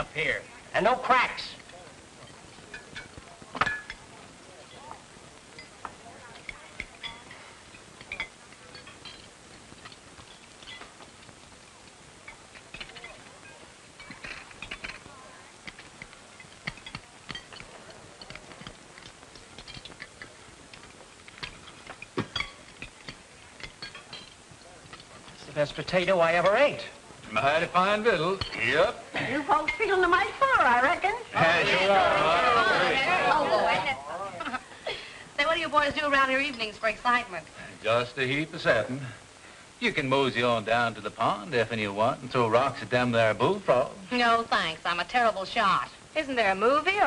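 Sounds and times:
faint low voices: 1.5 - 9.6
dishes and cutlery clinking: 1.6 - 4.1, 4.7 - 11.5, 12.2 - 34.0.

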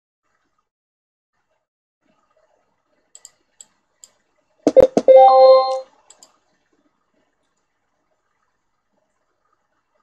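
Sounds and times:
faint clicks: 3.1 - 4.2, 6.1 - 6.4
short electronic chime: 4.7 - 5.8.

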